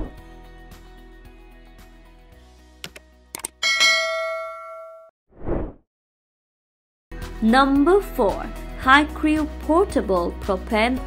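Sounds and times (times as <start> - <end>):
mouse clicks: 2.8 - 3.6
bell ding: 3.6 - 5.1.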